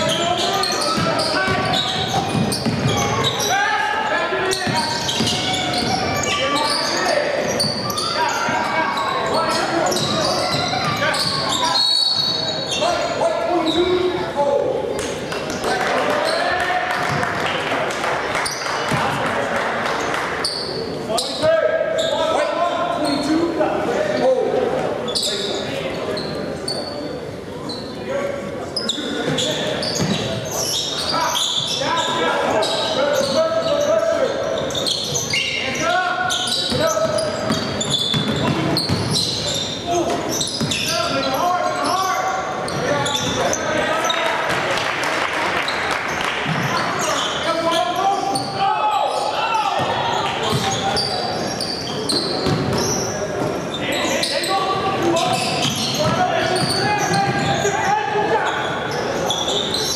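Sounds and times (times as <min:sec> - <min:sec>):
basketball bouncing on gym floor: 0:00.9 - 0:03.1, 0:04.6 - 0:06.0, 0:36.7 - 0:39.2, 0:49.8 - 0:50.8, 0:52.1 - 0:53.5.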